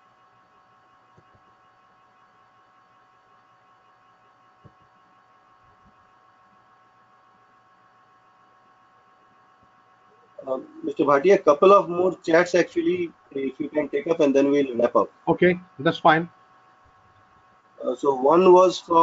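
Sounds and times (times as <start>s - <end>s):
faint call line hum: 5.8s - 19.0s.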